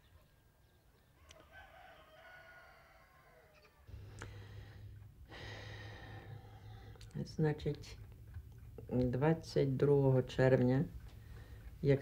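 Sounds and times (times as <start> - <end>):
rooster crowing faintly: 1.2 - 3.9.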